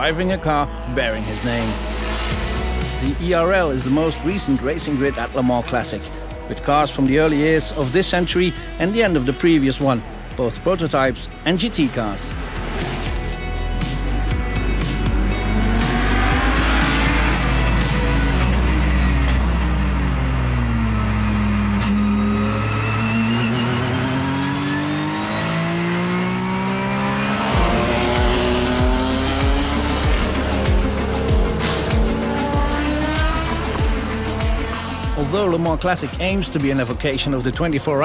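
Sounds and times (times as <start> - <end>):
racing car engines: 0.0 - 38.0
music beat: 12.4 - 19.0, 27.0 - 38.0.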